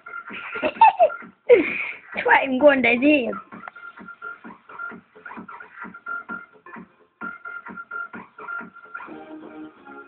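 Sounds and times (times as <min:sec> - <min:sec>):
person laughing loudly: 0:00.3 - 0:02.3.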